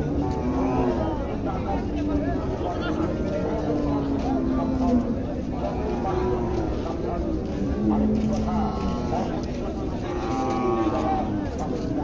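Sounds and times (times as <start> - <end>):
people's voices: 0.0 - 12.0.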